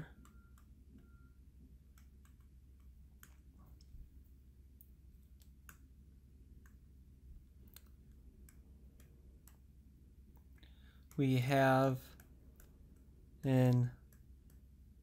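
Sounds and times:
low steady background hum: 0.0 - 15.0
stylus tapping on tablet screen: 0.1 - 4.2, 4.8 - 15.0.

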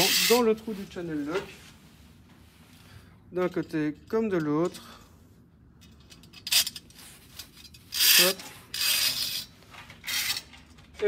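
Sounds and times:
wire rope scraping through metal: 0.0 - 0.8, 6.4 - 10.6.

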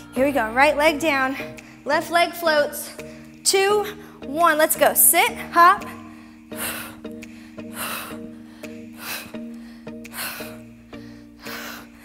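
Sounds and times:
background music with held chords: 0.0 - 12.0
woman breathing sharply: 1.4 - 1.8, 5.9 - 12.0.

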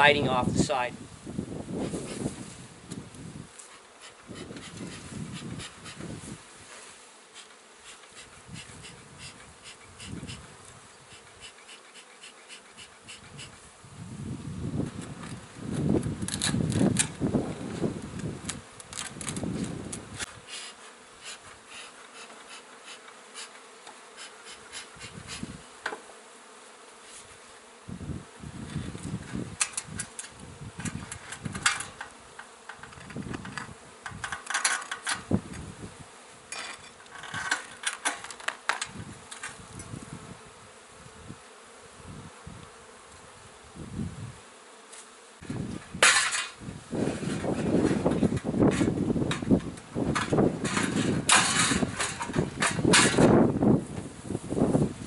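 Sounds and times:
bees buzzing: 1.0 - 55.0
siding cracking and scraping: 36.5 - 39.6, 46.0 - 53.3.

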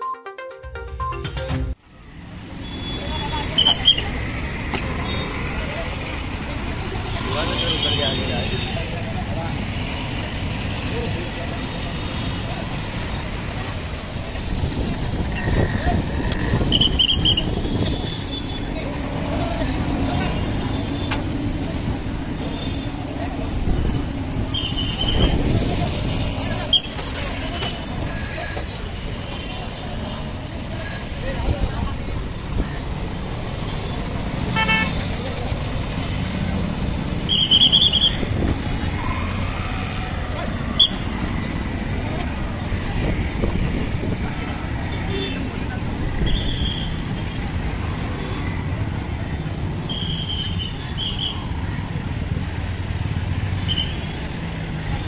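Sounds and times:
vehicle engines running: 2.0 - 55.0
high vehicle horn toots: 34.6 - 35.0.

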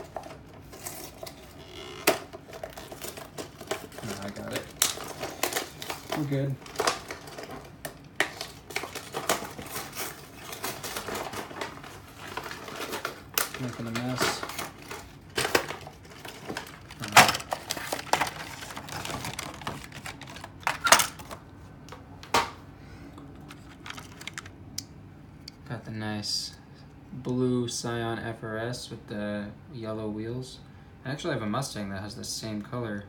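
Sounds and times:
plastic packaging crackling: 0.0 - 21.4, 23.4 - 24.6.

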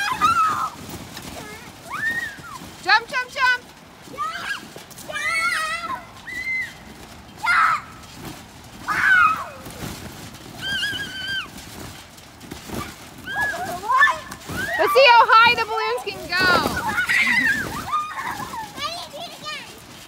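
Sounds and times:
children squealing and shrieking: 0.0 - 0.8, 1.8 - 2.7, 4.1 - 8.0, 8.8 - 9.8, 10.6 - 11.6, 12.7 - 15.6, 16.3 - 19.5.

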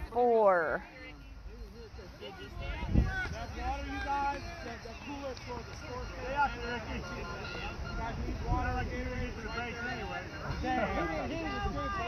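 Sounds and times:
people talking: 0.0 - 12.0
wind rumble on microphone: 2.6 - 3.5.

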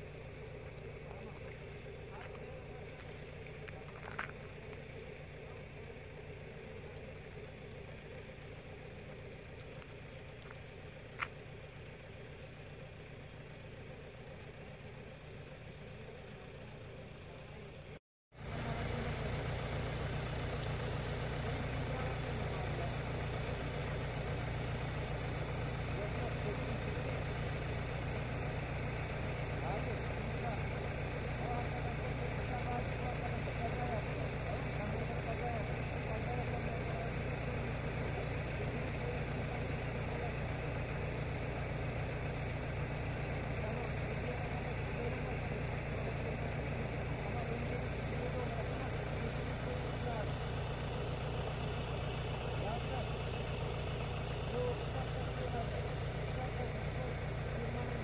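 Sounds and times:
vehicle engine idling: 0.0 - 58.0.

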